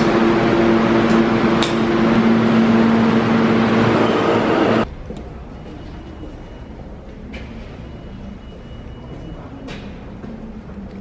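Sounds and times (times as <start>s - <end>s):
low motor hum: 0.0s - 5.2s
subway train rumbling: 0.0s - 11.0s.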